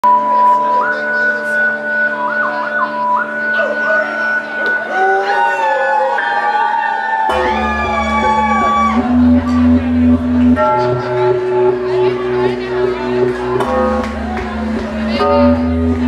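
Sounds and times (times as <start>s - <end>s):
low drone: 7.3s - 16.0s
sliding high tones: 7.3s - 16.0s
bass and drums: 7.4s - 16.0s.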